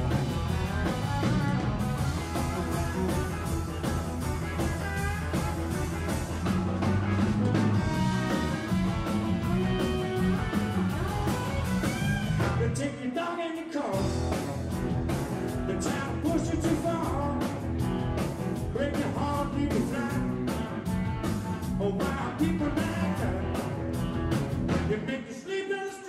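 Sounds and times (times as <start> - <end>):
electric guitar bent notes: 0.0 - 12.8
steady drum beat: 0.0 - 12.8, 14.0 - 25.1
electric bass: 0.0 - 12.9, 14.0 - 25.0.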